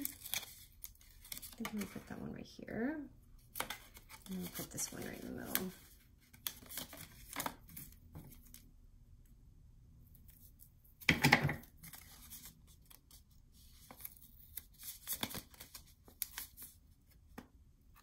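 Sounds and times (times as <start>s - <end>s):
paper rustling: 11.6s - 17.2s.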